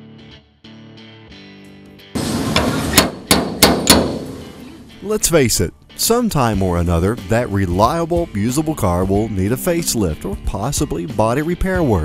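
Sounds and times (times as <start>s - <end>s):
slide hammer metal clacks: 2.2s - 4.4s.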